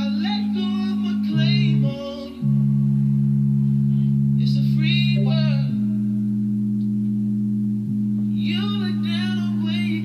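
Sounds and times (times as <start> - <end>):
person singing: 0.0 - 2.6, 4.4 - 6.0, 8.3 - 10.0
low organ chord: 0.0 - 10.0.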